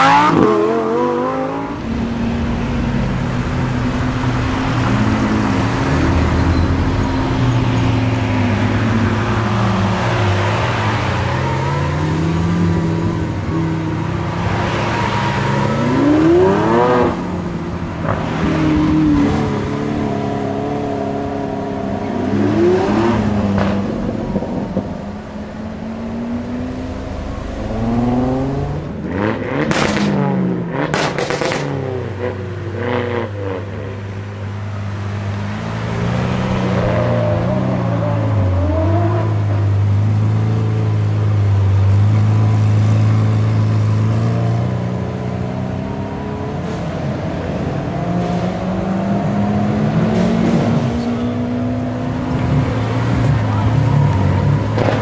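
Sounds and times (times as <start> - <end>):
car engine revving and accelerating: 0.0 - 34.2, 35.0 - 55.0.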